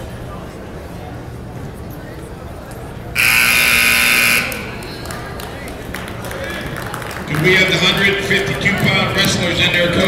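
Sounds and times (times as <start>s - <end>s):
scoreboard buzzer: 3.2s - 5.0s.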